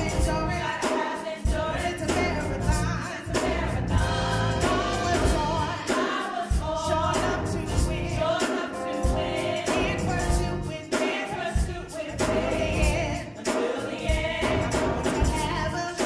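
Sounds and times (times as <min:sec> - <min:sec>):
instrumental backing with steady beat: 0:00.0 - 0:16.0
women singing gospel in harmony: 0:00.0 - 0:16.0.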